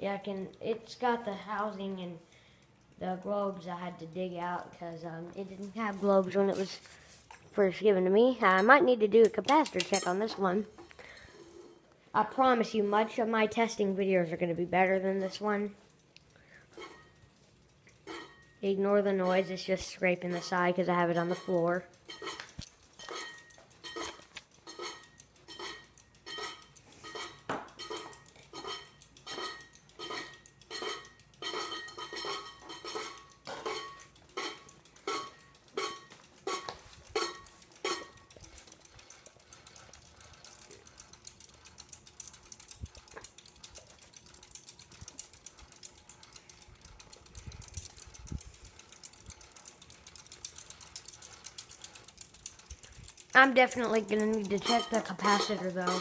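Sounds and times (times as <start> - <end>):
ceiling fan metallic clinking: 0.0 - 56.0
fan rattling: 0.0 - 56.0
fan clicks: 8.4 - 11.2, 13.3 - 56.0.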